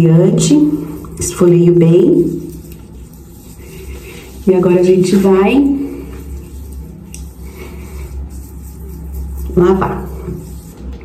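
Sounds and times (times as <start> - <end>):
steady low hum: 0.0 - 11.0
fingertips rubbing skin: 0.4 - 11.0.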